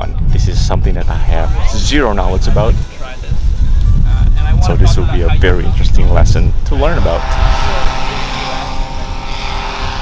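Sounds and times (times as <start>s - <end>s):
paramotor engine droning: 4.8s - 10.0s.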